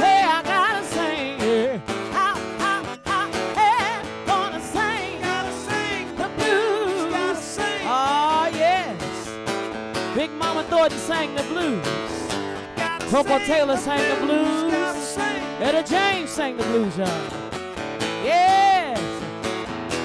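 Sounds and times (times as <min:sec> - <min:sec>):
acoustic guitar playing blues: 0:00.0 - 0:20.0.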